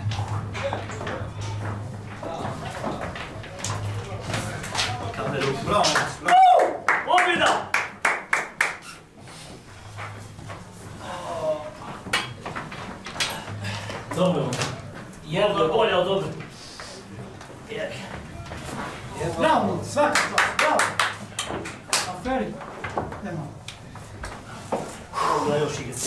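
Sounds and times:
hand clapping: 4.6s - 9.1s, 20.0s - 22.3s.

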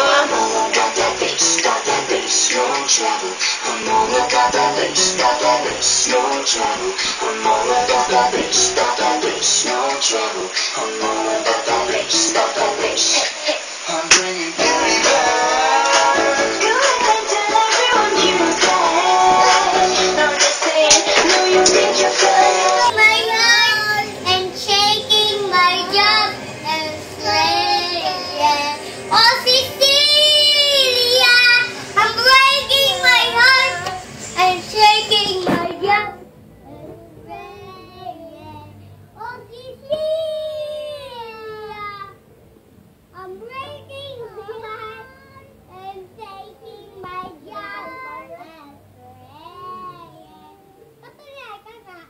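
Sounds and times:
music playing: 0.0s - 39.0s
toddler girl singing: 22.7s - 42.2s, 43.2s - 52.0s.

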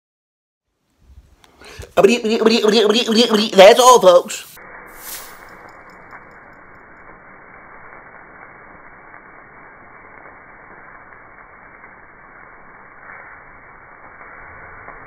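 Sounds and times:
meat sizzling on a grill: 4.4s - 15.0s.

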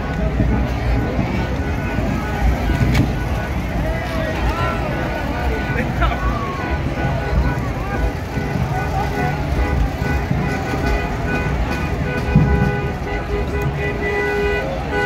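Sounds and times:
car engines rumbling past: 0.0s - 15.0s
crowd voices: 0.0s - 15.0s.

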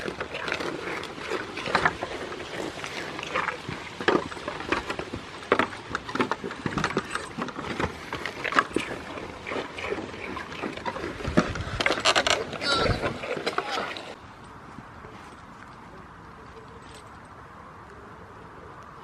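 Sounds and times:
goats crunching biscuits: 0.0s - 14.2s.

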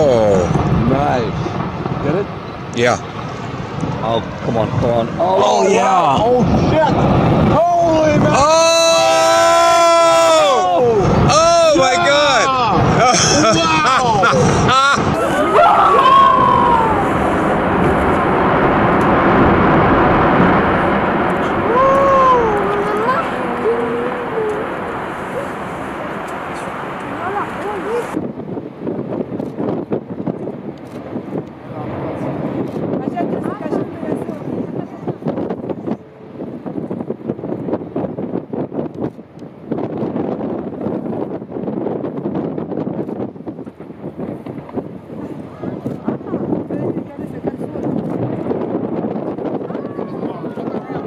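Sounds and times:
steady rushing noise: 0.0s - 51.0s
wind buffeting microphone: 0.0s - 51.0s
onlookers exclaiming ooh: 21.6s - 24.7s.

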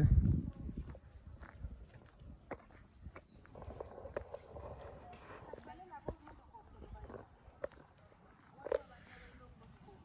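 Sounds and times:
footsteps on brick paving: 0.2s - 10.0s.

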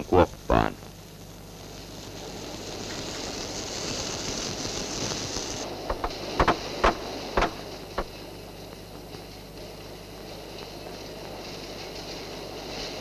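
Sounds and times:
construction site noise: 5.4s - 13.0s.

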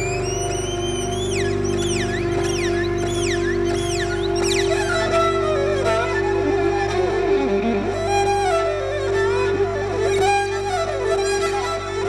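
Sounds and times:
band sustained chord: 0.0s - 12.0s
violin sliding and swooping: 0.0s - 12.0s.

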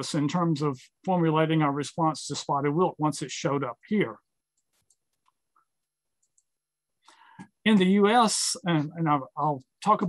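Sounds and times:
person speaking: 0.0s - 5.3s.

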